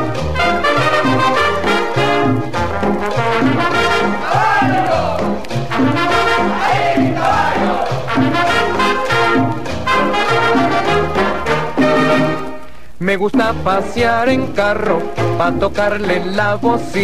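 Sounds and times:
bouncing bass line: 0.0s - 12.5s, 13.3s - 17.0s
brass section playing: 0.0s - 12.8s
percussion: 0.0s - 17.0s.

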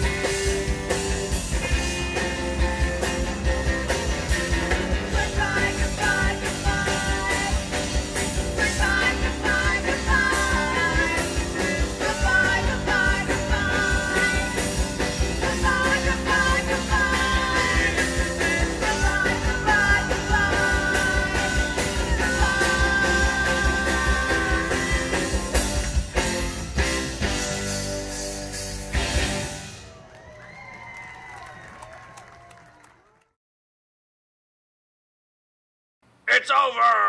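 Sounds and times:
live rock band playing: 0.0s - 29.9s
sung vocals: 4.9s - 25.5s.

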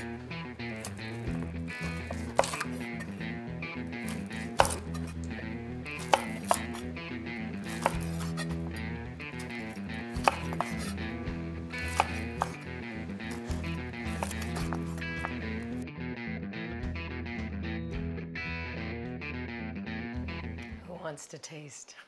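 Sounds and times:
knife cutting through ribs: 0.0s - 15.7s
background music: 0.0s - 21.2s
knife knocking on wooden board: 1.3s - 2.8s, 4.2s - 5.1s, 10.2s - 10.9s.

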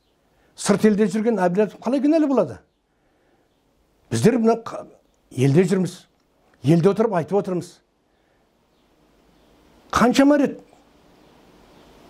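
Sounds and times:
faint room hiss: 0.0s - 12.0s
man speaking: 0.6s - 2.7s, 4.1s - 7.9s, 9.9s - 10.7s.

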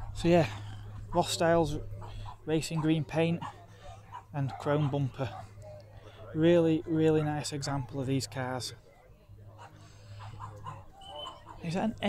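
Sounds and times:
faint voices: 0.0s - 12.0s
distant dog yapping: 9.6s - 11.7s.

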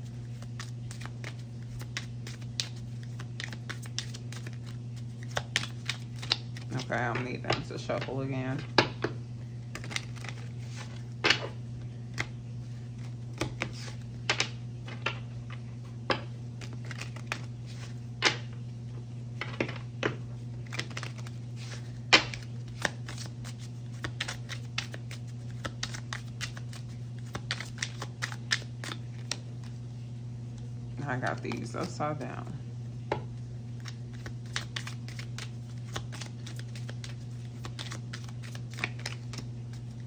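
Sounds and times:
cards being shuffled by hand: 0.0s - 18.6s, 19.4s - 29.9s, 31.0s - 32.2s, 33.2s - 40.0s
low steady hum: 0.0s - 40.0s.

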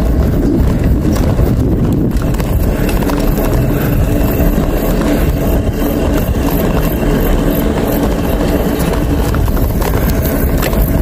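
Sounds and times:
bicycle tyres rolling on concrete: 0.0s - 11.0s
wind buffeting microphone: 0.0s - 11.0s.

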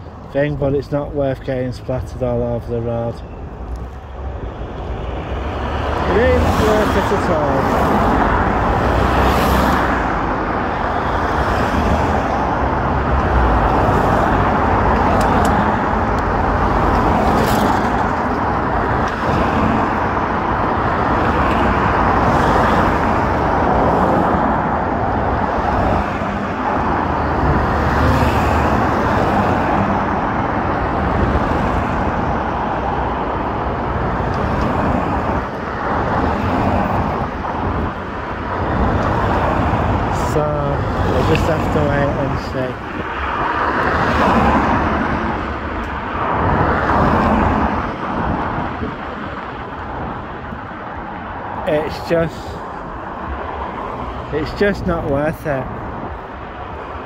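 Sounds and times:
cars driving past: 0.0s - 57.0s.

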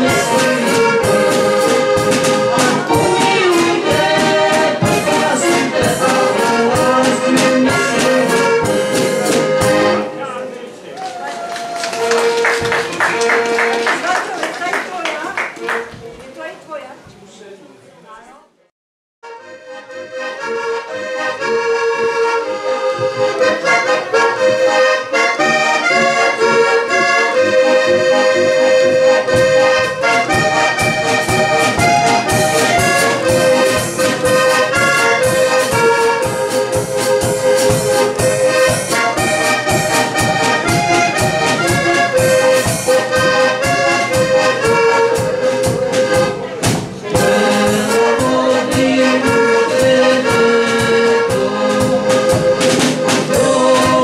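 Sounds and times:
steady beat: 0.0s - 10.1s, 22.3s - 54.0s
button accordion playing a tune: 0.0s - 10.5s, 12.0s - 14.2s, 19.2s - 54.0s.

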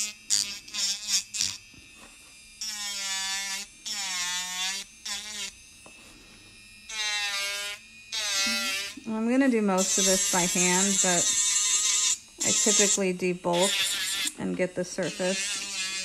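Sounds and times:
electric nail drill whine: 0.0s - 16.0s.

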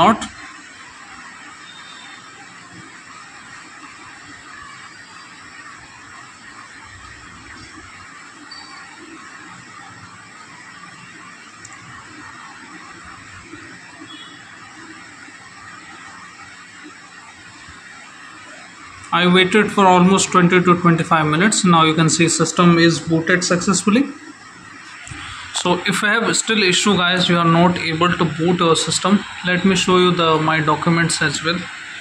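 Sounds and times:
steady background hiss: 0.0s - 32.0s.

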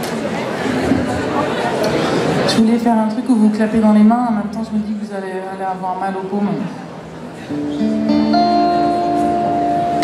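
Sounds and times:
electric guitar chord ringing: 7.5s - 10.0s.

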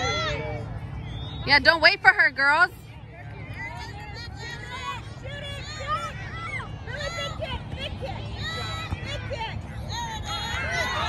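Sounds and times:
players and spectators chatter: 0.0s - 11.0s.

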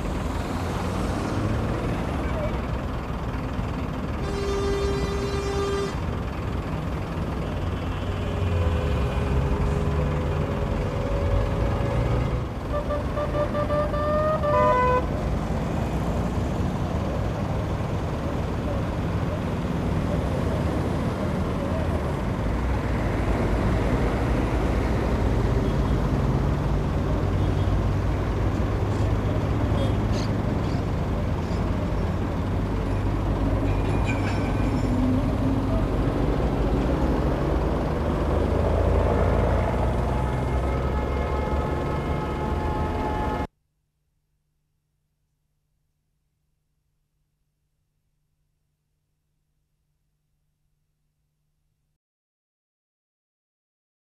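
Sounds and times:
slow traffic passing: 0.0s - 43.5s
car horns honking: 4.1s - 6.2s, 10.5s - 15.2s, 39.6s - 43.5s.

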